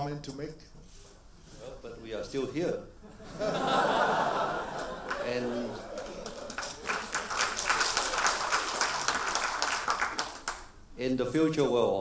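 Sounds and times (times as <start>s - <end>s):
audience applauding: 4.3s - 10.7s.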